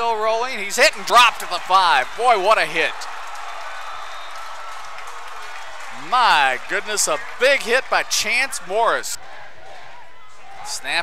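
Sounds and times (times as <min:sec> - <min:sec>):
crowd cheering and applause: 0:00.6 - 0:11.0.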